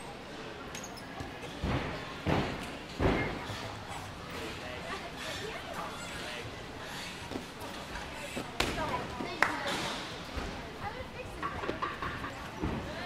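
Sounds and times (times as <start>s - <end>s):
gymnastics equipment knocks: 1.6s - 3.4s.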